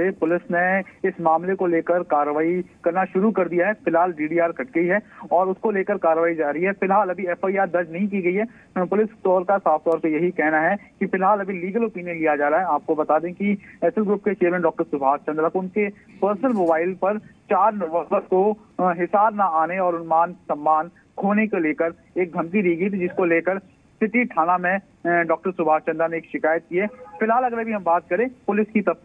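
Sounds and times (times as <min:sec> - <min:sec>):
man speaking over telephone: 0:00.0 - 0:29.0.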